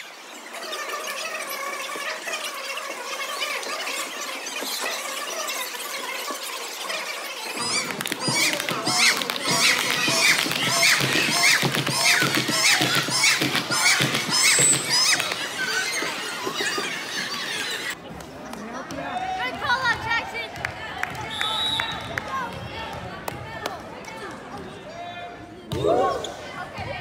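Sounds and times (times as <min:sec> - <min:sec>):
shoes squeaking on hardwood floor: 0:00.8 - 0:18.0.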